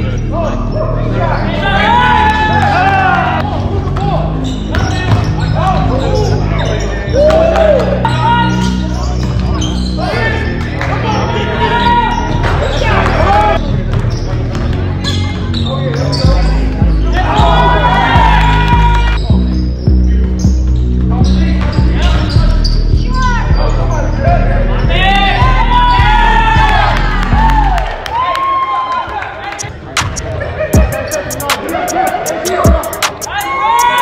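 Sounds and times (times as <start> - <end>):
players calling out: 0.0 - 28.1, 29.0 - 34.0
sneakers squeaking on hardwood: 3.9 - 7.1, 8.0 - 17.6, 19.2 - 24.4
music with heavy bass: 16.2 - 28.0, 29.6 - 34.0.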